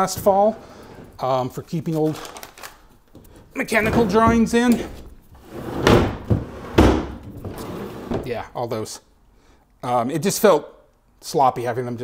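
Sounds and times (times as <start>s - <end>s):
metal drawer sliding on runners: 3.8s - 8.3s
metal drawer banging closed: 5.7s - 8.3s.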